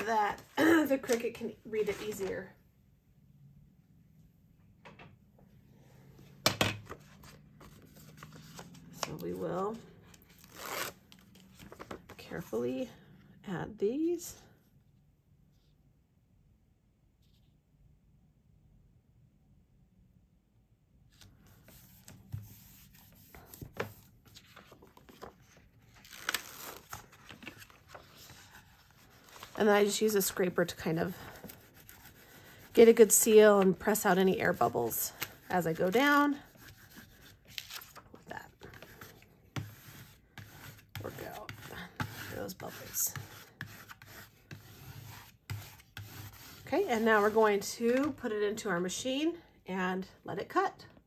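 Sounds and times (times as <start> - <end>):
plastic scraper rubbing on sheet: 30.6 - 34.8, 38.8 - 48.1.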